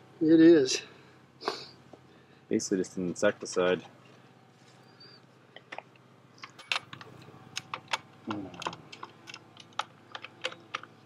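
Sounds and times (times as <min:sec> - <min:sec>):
metal clicks and clacks of machine: 0:06.4 - 0:10.9.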